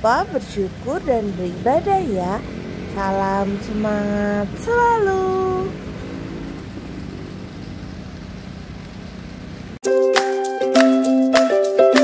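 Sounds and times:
outdoor background rumble: 0:00.0 - 0:09.8
music: 0:09.8 - 0:12.0.

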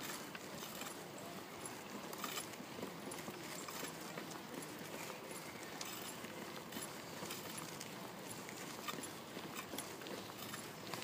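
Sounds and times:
bicycle rattling and clicking: 0:00.0 - 0:11.0.

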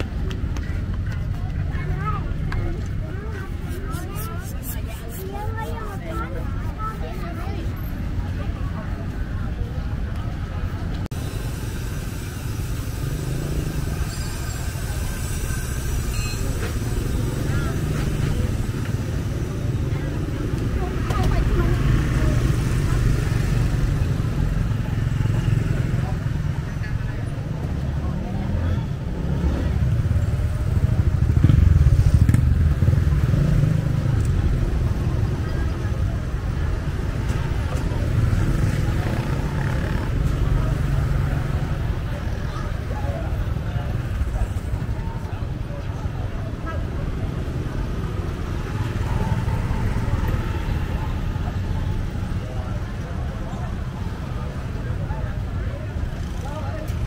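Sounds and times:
chatter of passers-by: 0:00.0 - 0:57.0
low traffic rumble: 0:00.0 - 0:57.0
motorbike engines passing: 0:00.0 - 0:57.0.

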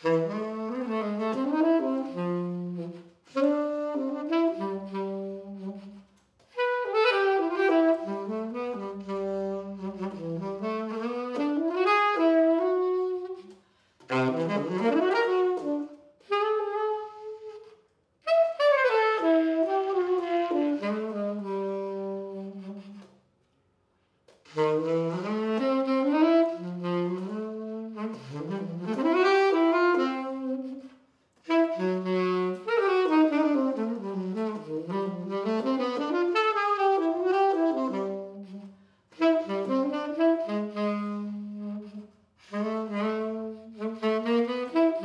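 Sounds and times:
solo tenor saxophone melody: 0:00.0 - 0:23.2, 0:24.3 - 0:45.0.

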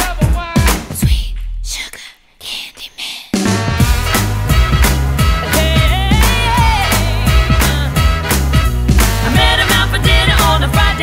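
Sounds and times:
breathy whispered voice sounds: 0:01.0 - 0:03.4
low bass note: 0:03.6 - 0:09.6.

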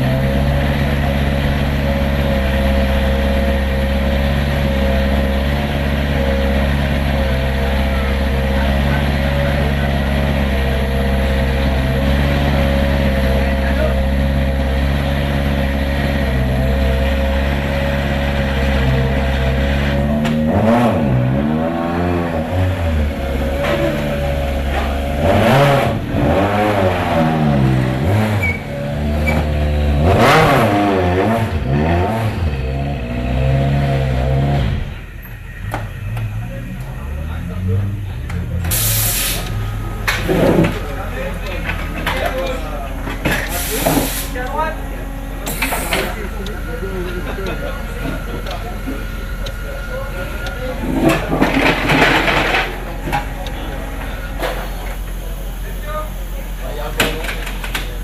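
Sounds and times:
rally car engine idling and revving: 0:00.0 - 0:58.0.

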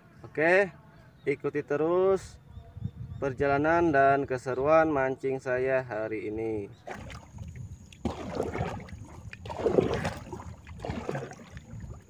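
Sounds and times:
water washing along boat hull: 0:06.8 - 0:12.0.

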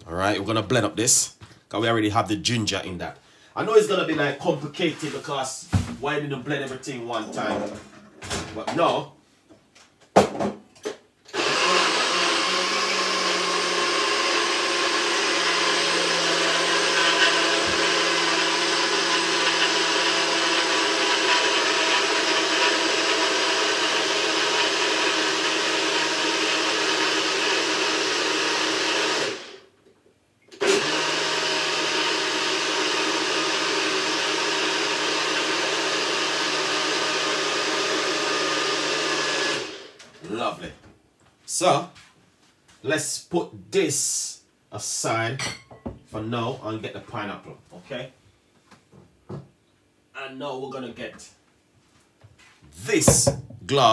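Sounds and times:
electric blender running: 0:11.3 - 0:29.7, 0:30.6 - 0:40.0.

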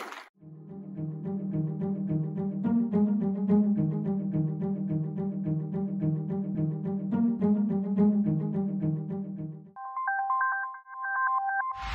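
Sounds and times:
low-pitched background music: 0:00.4 - 0:09.8.

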